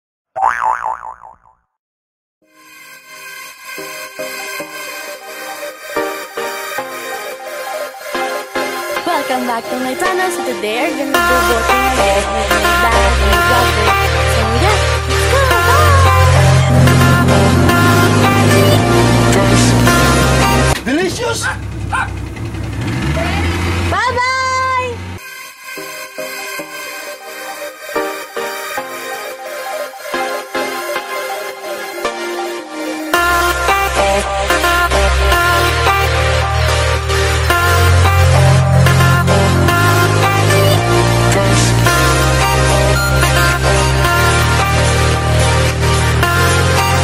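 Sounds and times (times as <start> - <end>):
cartoon boing sound effect: 0.4 - 1.8
motorboat engine running: 15.8 - 25.2.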